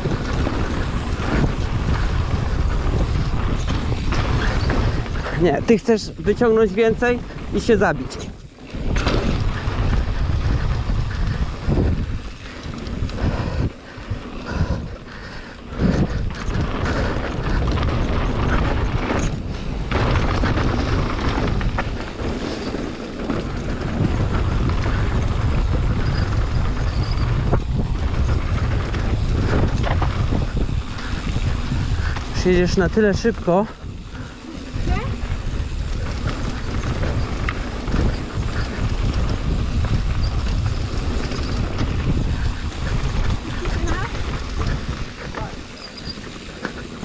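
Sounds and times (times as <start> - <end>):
bike rattling: 0.0 - 47.0
tyres rolling on dirt: 0.0 - 47.0
wind rushing over microphone: 0.0 - 47.0.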